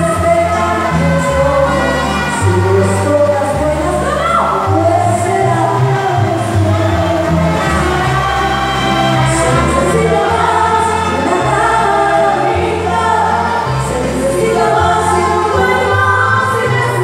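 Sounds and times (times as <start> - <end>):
amplified backing music: 0.0 - 17.0
woman singing into microphone: 0.0 - 17.0.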